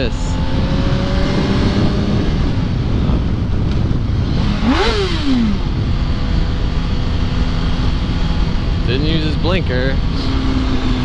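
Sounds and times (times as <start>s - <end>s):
motorcycle engine running: 0.0s - 11.0s
wind and road rush: 0.0s - 11.0s.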